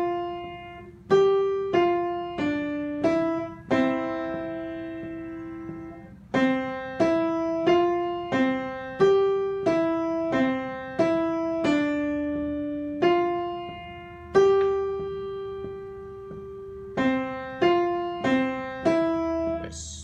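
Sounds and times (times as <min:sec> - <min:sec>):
piano single notes: 0:00.0 - 0:20.0.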